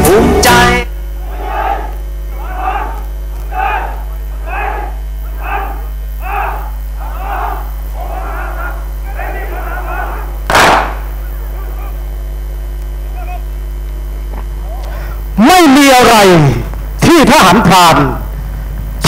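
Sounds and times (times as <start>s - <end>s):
soldiers shouting calls in unison: 0.3s - 12.1s, 13.0s - 13.5s
loud short blast: 10.5s - 11.1s.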